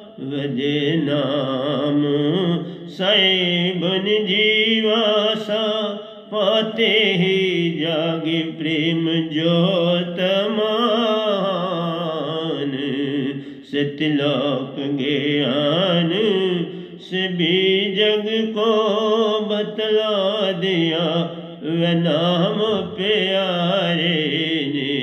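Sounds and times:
man singing devotional song: 0.0s - 25.0s.

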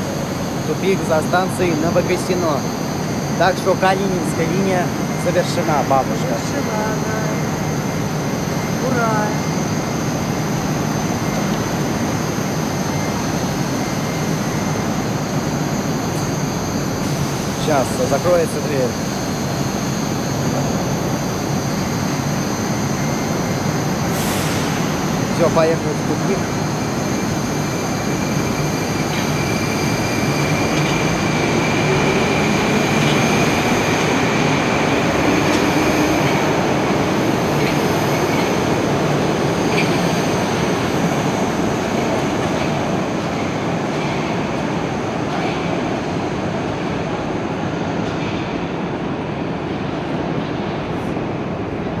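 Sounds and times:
metro train drive whining: 0.0s - 52.0s
train running hum: 0.0s - 52.0s.

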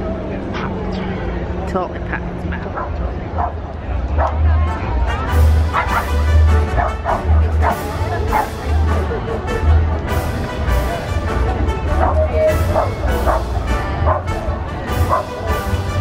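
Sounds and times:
crowd chatter: 0.0s - 16.0s
music: 4.0s - 16.0s
dog yapping: 5.7s - 8.6s, 12.0s - 14.3s, 15.1s - 15.4s.

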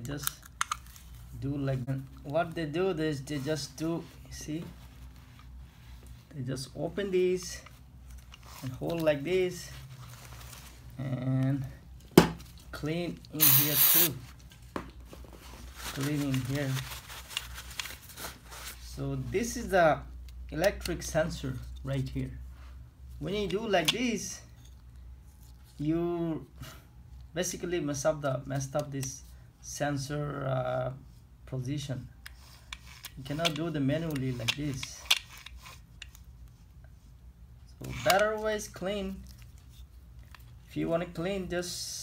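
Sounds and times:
paper towel rubbing and rustling: 15.2s - 19.0s.

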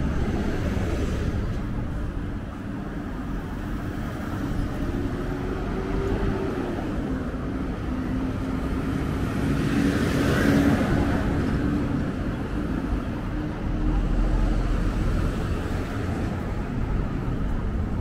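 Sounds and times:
road traffic hum: 0.0s - 18.0s.

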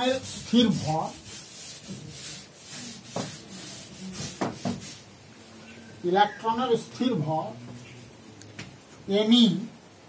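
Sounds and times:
eraser rubbing chalkboard: 0.0s - 5.1s.

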